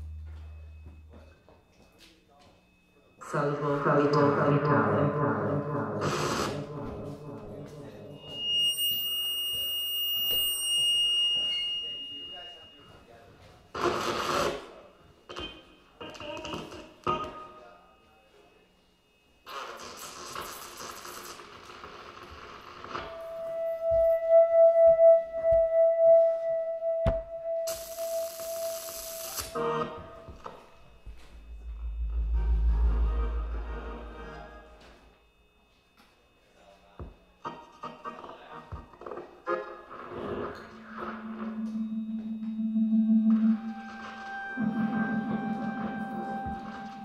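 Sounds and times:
electronic pitched drone: 0.0 - 1.6, 31.0 - 35.2, 40.6 - 47.0
high held tone: 0.0 - 2.0, 8.0 - 12.9, 31.0 - 35.2, 40.7 - 47.0.

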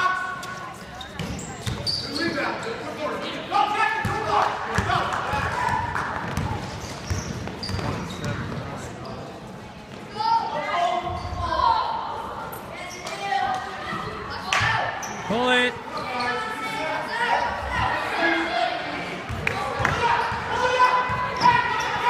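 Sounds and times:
people shouting in a gym: 0.0 - 0.4, 2.0 - 6.6, 10.1 - 22.0.

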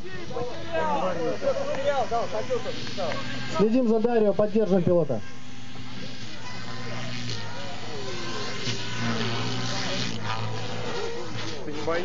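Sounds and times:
model helicopter rotor hum: 0.0 - 12.0.

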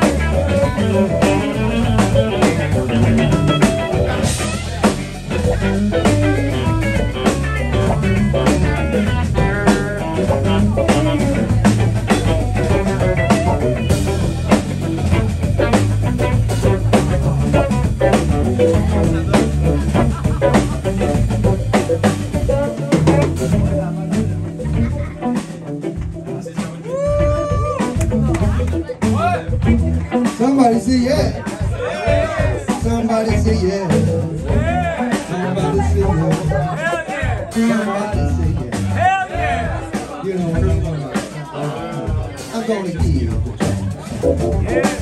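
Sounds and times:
electric guitar lead lines: 0.0 - 31.4, 43.8 - 45.0
bass guitar: 0.0 - 45.0
drum kit: 0.0 - 45.0
keyboard: 0.0 - 45.0.

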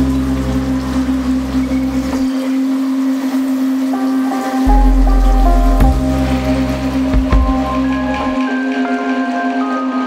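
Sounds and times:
synth drone: 0.0 - 9.3
hissing noise texture: 0.5 - 8.5
deep bass note: 4.7 - 8.4.

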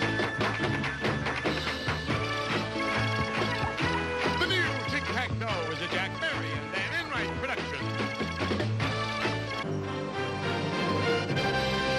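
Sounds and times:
upbeat game show theme music: 0.0 - 11.9.

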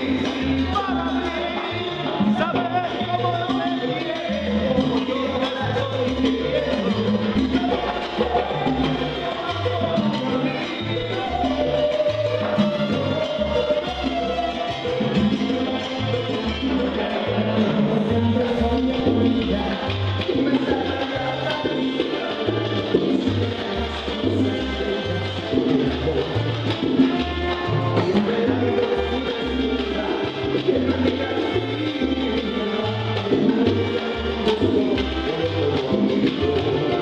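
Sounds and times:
percussion strikes: 0.0 - 37.0
salsa band playing: 0.0 - 37.0
walking bass line: 0.0 - 37.0.

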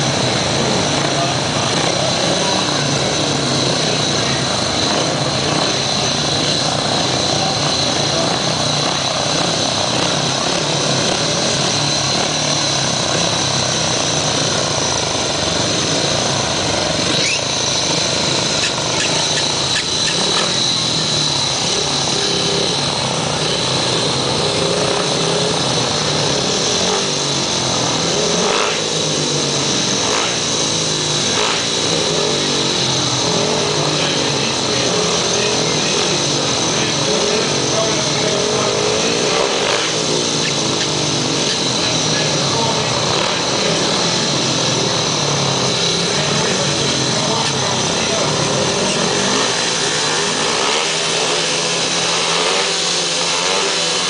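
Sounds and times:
motorcycle engines revving: 0.0 - 54.0.

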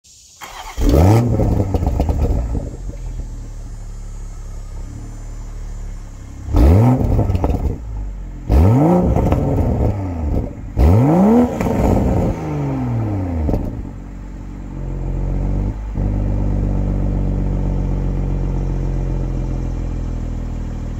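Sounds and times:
car engine idling and revving: 0.1 - 20.9.

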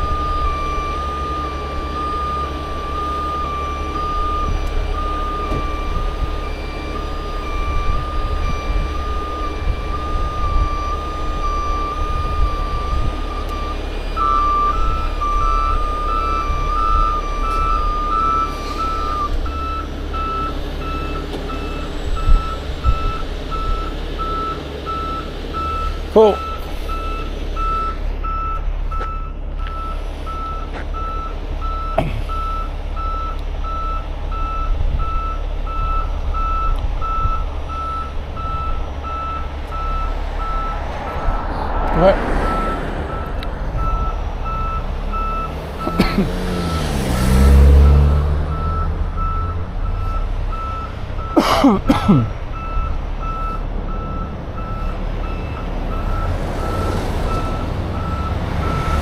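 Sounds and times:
cars passing: 0.0 - 59.0
diesel engine rumble: 0.0 - 59.0
truck reversing alarm beeping: 0.0 - 59.0.

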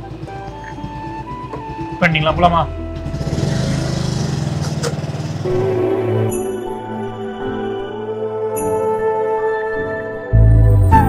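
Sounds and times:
small motorcycle engine running: 0.0 - 5.8.

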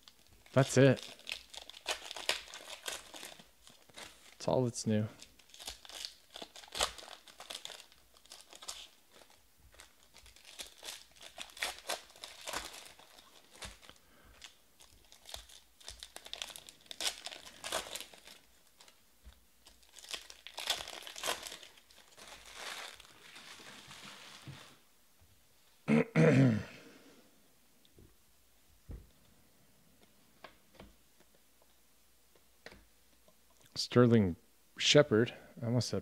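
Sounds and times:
foil wrappers crinkling and tearing: 0.0 - 24.8.

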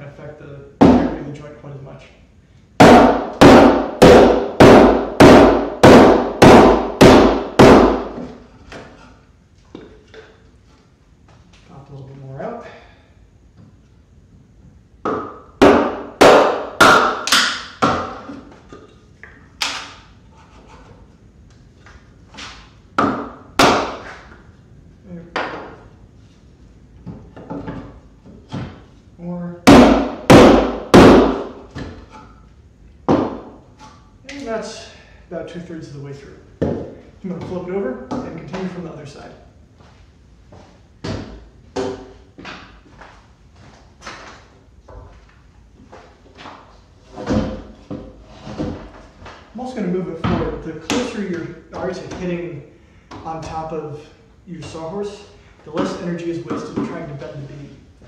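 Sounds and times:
wooden mallet striking chisel: 2.8 - 8.3, 15.0 - 18.2, 29.7 - 31.5.

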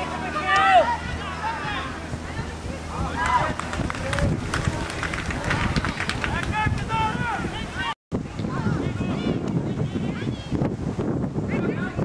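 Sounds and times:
young players shouting: 0.0 - 3.6
wind rumble on microphone: 0.0 - 12.0.

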